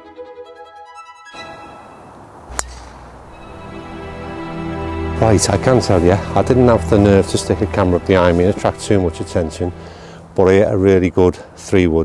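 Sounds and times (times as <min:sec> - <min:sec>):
background music: 0:00.0 - 0:10.6
golf club striking ball: 0:02.1 - 0:04.1.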